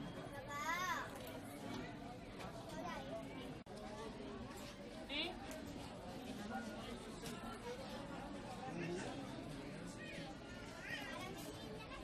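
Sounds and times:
murmur of background voices: 0.0s - 12.0s.

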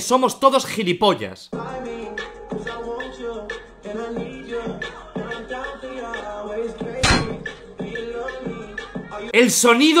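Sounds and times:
hip-hop music with steady beat: 1.5s - 10.0s
loud sharp impact thud: 7.0s - 7.6s.

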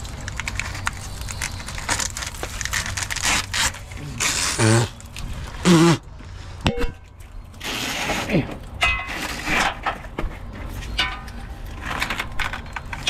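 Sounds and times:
hose scraping and rubbing: 0.7s - 6.6s, 7.5s - 11.0s.

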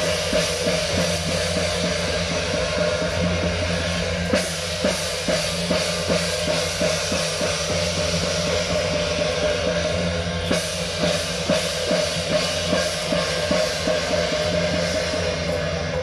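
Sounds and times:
drum beating: 0.0s - 16.0s
hand cymbals clashing: 0.0s - 16.0s.

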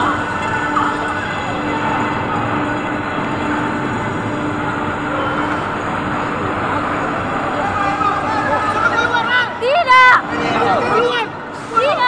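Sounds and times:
low hum: 0.0s - 9.6s
crowd of voices: 0.0s - 12.0s
engine noise: 0.0s - 12.0s.

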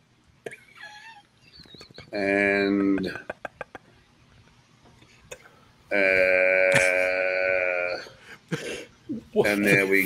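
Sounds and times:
man humming uhhh: 5.9s - 8.2s.

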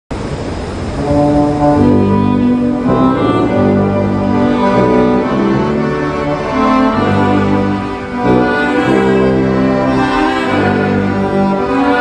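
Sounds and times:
brass and accordion quartet playing hymn: 1.0s - 12.0s.

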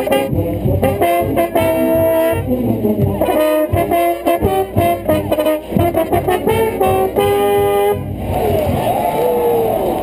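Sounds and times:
marching band brass chord: 0.0s - 8.9s
stadium crowd noise: 0.0s - 10.0s.

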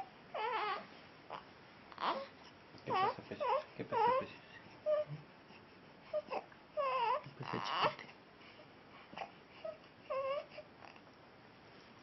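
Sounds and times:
baby crying: 0.4s - 1.4s, 2.0s - 2.3s, 2.9s - 5.2s, 6.1s - 8.0s, 9.6s - 10.7s.

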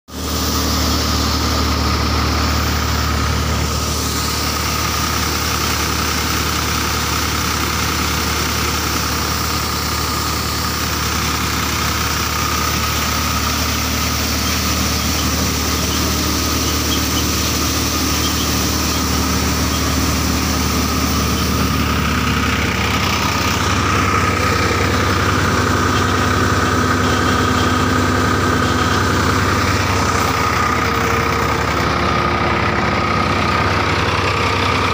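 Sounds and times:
tractor engine hum: 0.1s - 34.9s
thresher high whine: 0.2s - 34.9s.

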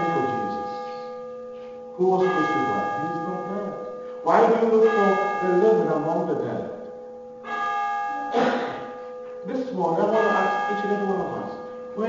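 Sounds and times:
church bell ringing: 0.0s - 12.0s.

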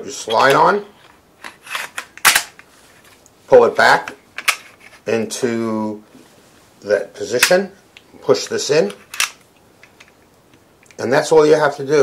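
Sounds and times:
pistol slide scraping: 1.4s - 2.6s, 8.9s - 10.1s.

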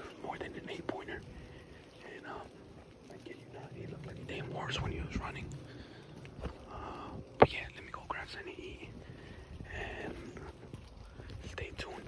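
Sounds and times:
man whispering: 0.0s - 6.0s, 6.7s - 12.0s.

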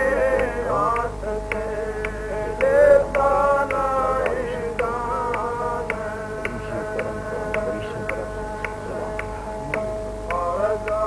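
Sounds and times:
light rhythmic tap: 0.0s - 11.0s
reedy held chord: 0.0s - 11.0s.

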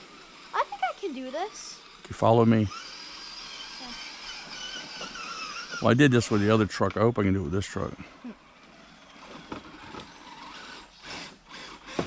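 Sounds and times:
rc car electric motor whining: 0.0s - 12.0s.

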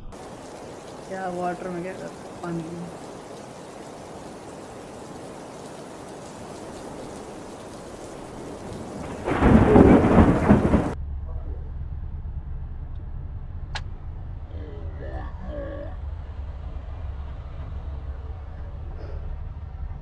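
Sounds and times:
rain hiss: 0.0s - 11.0s
deep thunderclap rumbling: 0.0s - 12.7s
steady low hum: 9.3s - 20.0s.

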